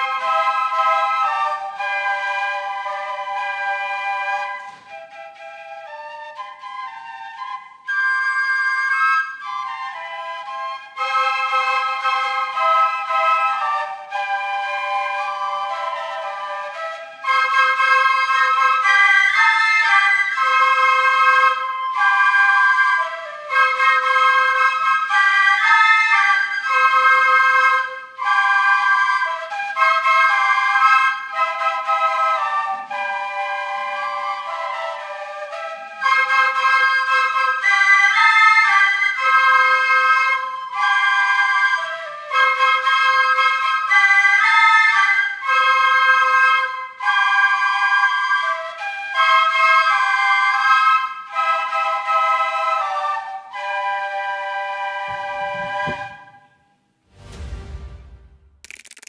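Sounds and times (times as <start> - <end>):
flute ensemble playing in harmony: 0.0 - 56.8.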